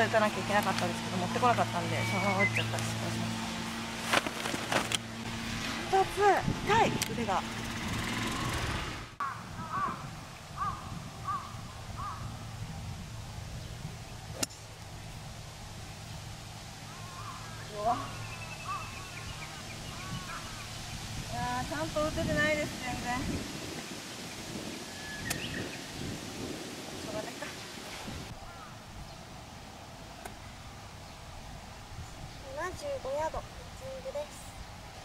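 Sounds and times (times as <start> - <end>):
bird calling: 0.0 - 3.9, 9.2 - 12.4, 16.8 - 21.0, 24.8 - 26.1, 27.5 - 29.2
outdoor background noise: 0.0 - 35.0.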